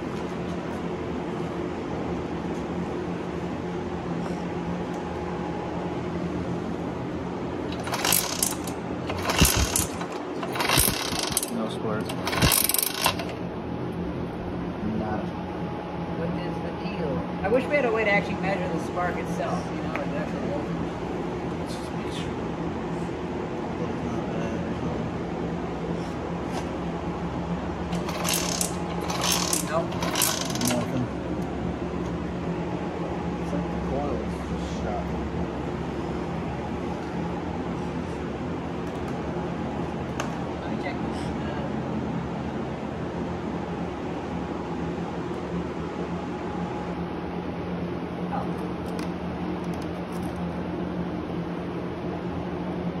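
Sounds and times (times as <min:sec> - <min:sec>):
steady low hum: 0:00.0 - 0:53.0
moped engine clicking when spun by hand: 0:07.7 - 0:13.4, 0:27.9 - 0:31.0
metallic ratcheting clicks: 0:28.0 - 0:30.9.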